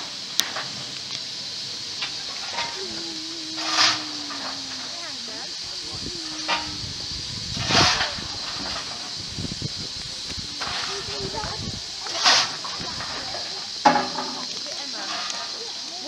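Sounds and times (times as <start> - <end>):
steam hissing: 0.0 - 16.0.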